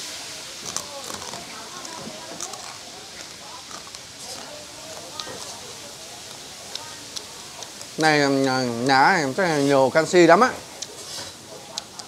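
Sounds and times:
background chatter: 0.0s - 12.0s
crabs being chewed: 0.6s - 8.9s, 10.7s - 12.0s.

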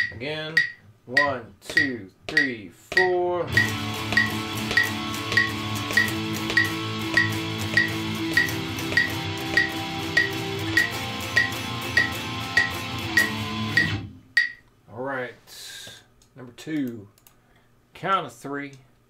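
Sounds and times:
metronome clicks: 0.0s - 14.8s
electric guitar strumming chords: 3.5s - 14.2s.

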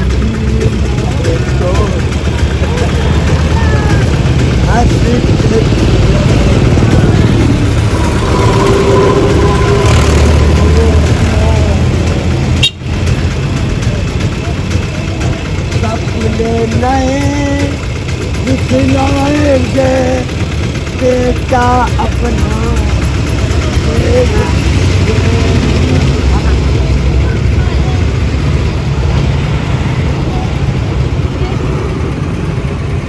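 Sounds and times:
people's voices: 0.0s - 33.0s
vehicle engines idling: 0.0s - 33.0s.

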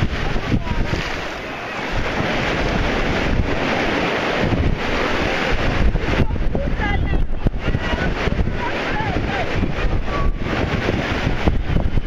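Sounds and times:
ocean surf washing up beach: 0.0s - 12.0s
wind buffeting microphone: 0.0s - 12.0s.

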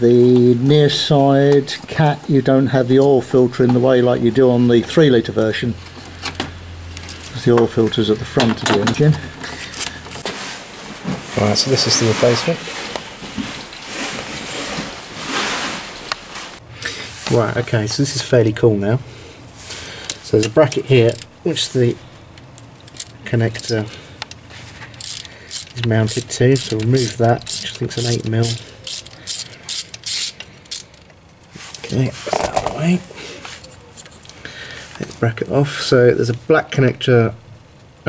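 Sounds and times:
rustling handling noise: 7.0s - 17.7s, 19.4s - 35.3s
hand ratchet clicking: 25.0s - 31.0s.

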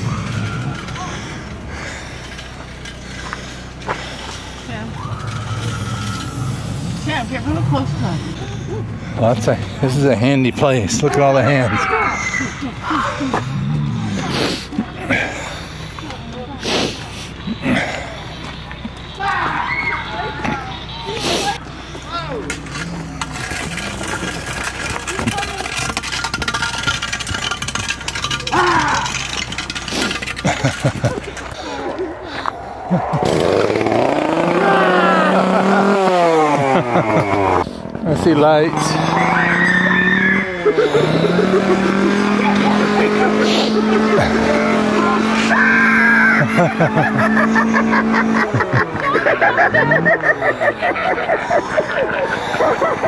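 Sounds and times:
people's voices: 0.0s - 53.0s
small engine revving: 11.0s - 18.2s, 32.9s - 53.0s
rapid mechanical rattle: 22.6s - 31.6s.

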